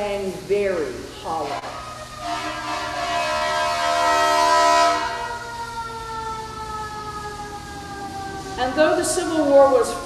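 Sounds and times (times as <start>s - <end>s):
vehicle horn chord: 2.2s - 5.2s.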